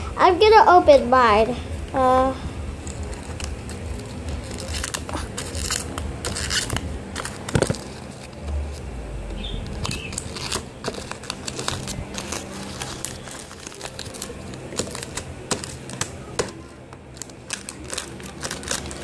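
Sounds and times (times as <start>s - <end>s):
wrapping paper crinkling and tearing: 2.8s - 8.8s, 9.8s - 19.0s
paper snap: 10.5s - 16.6s.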